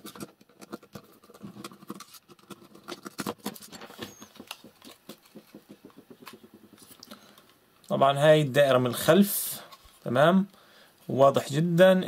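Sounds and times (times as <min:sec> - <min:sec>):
plastic housing being handled: 0:00.0 - 0:07.5.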